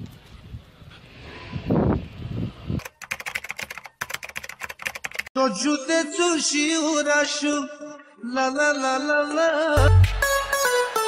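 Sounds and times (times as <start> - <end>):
rapid keyboard key clicks: 2.8 - 5.3.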